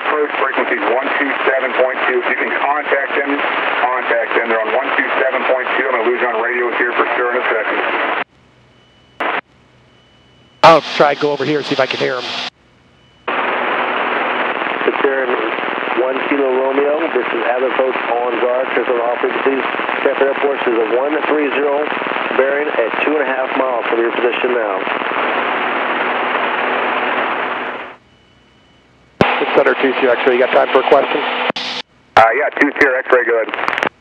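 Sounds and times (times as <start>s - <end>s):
voice over radio: 0.0s - 8.0s, 10.6s - 12.5s, 14.8s - 25.0s, 29.2s - 31.3s, 32.2s - 33.9s
radio static crackling hiss: 0.0s - 9.6s, 10.6s - 34.0s.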